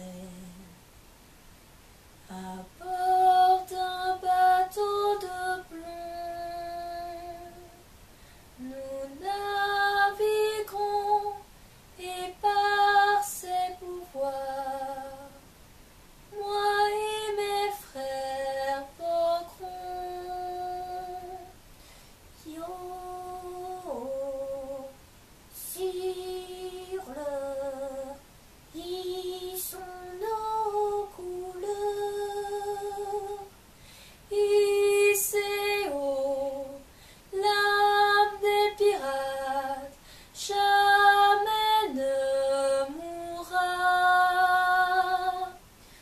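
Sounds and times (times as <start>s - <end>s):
woman singing unaccompanied: 0.0s - 0.9s, 2.2s - 15.6s, 16.3s - 21.7s, 22.3s - 46.0s
breaths: 8.0s - 8.6s, 21.7s - 22.3s, 33.7s - 34.3s, 36.9s - 37.3s, 40.0s - 40.4s, 45.7s - 46.0s.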